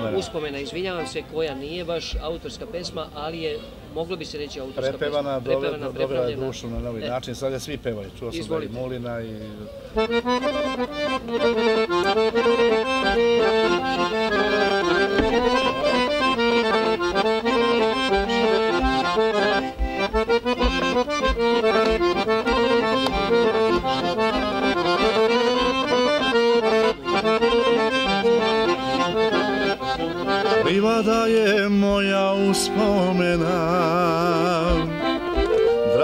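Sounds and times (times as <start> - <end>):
accordion folk melody: 0.0 - 7.0, 9.7 - 36.0.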